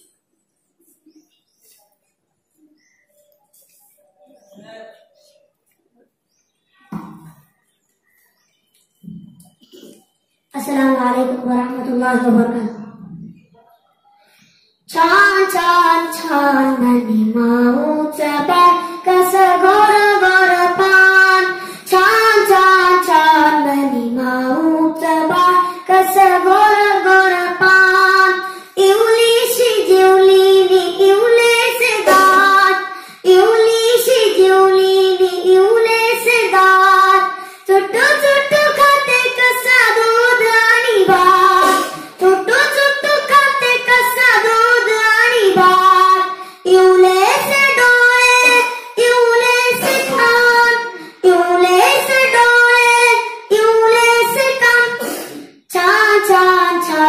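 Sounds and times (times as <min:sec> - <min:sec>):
boy singing solo into microphone: 0:14.9 - 0:57.0.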